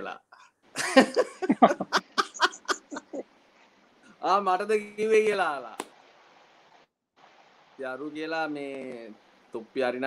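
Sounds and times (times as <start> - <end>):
man laughing heartily: 0.8 - 3.2.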